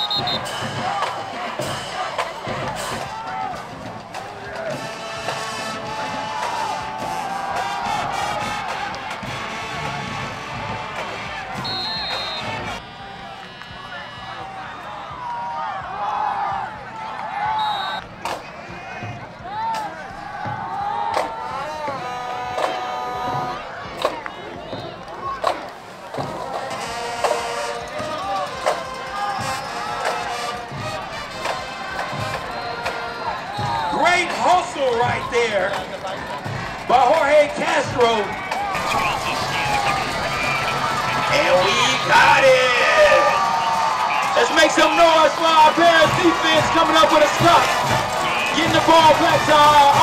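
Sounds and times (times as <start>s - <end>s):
drum hits: 0.0s - 12.8s, 43.3s - 50.0s
crowd talking and shouting: 0.0s - 50.0s
band music: 26.5s - 50.0s.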